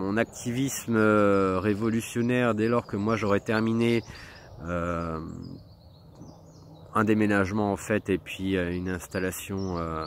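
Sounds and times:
man talking: 0.0s - 5.6s, 6.9s - 10.0s
faint outdoor background: 0.0s - 10.0s.

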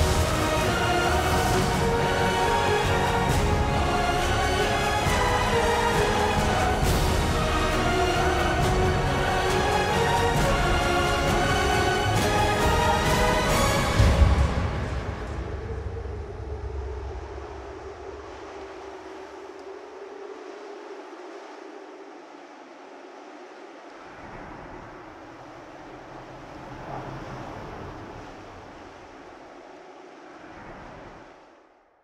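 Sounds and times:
low drone: 0.0s - 21.2s
wind-like rushing noise: 0.0s - 32.0s.

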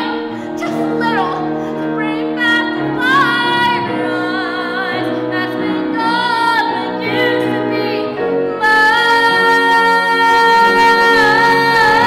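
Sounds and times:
grand piano accompaniment: 0.0s - 12.0s
soprano singing: 0.0s - 12.0s.

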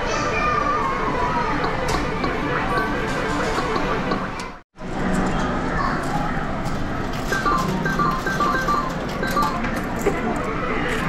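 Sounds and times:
slot machine electronic beeps: 7.1s - 10.2s
arcade din: 7.2s - 10.0s.

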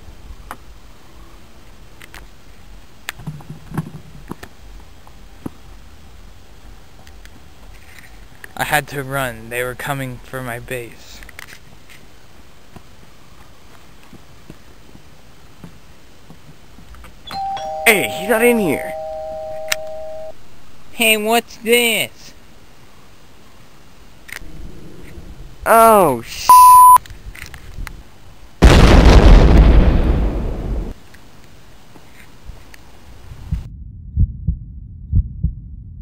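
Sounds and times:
electronic chime tones: 17.3s - 20.3s, 26.5s - 27.0s
loud explosion blast rumbling: 28.6s - 30.9s.

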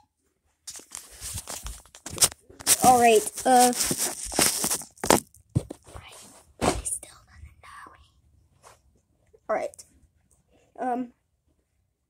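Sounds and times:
rustles and knocks: 0.7s - 7.1s
soft whispering: 5.9s - 8.8s.

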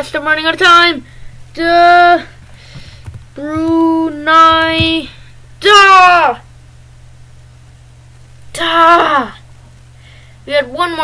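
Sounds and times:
low steady hum: 0.0s - 11.0s
person's drawn-out exclamation: 8.5s - 9.4s.

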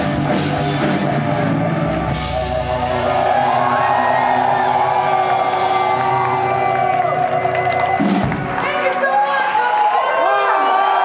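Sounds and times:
drums: 0.0s - 11.0s
audience cheering and whooping: 0.2s - 11.0s.

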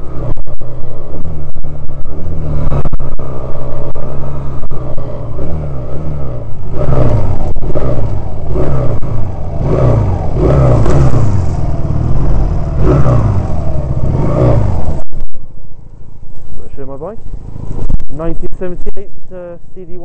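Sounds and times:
motorcycle engine revving: 0.0s - 20.0s.

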